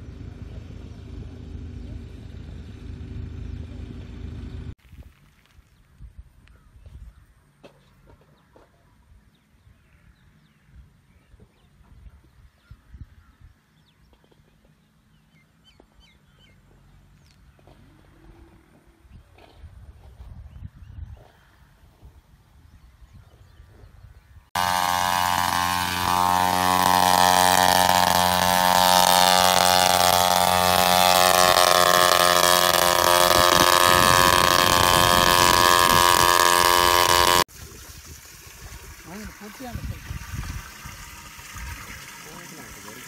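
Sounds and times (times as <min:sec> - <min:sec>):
faint outdoor sounds: 0:00.0 - 0:24.7
sprayer engine running: 0:24.6 - 0:37.5.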